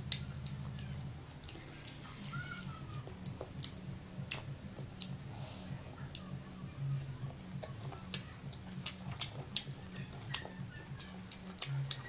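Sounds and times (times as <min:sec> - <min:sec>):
steady low hum: 0:00.0 - 0:12.0
crunching of mango being chewed: 0:07.5 - 0:12.0.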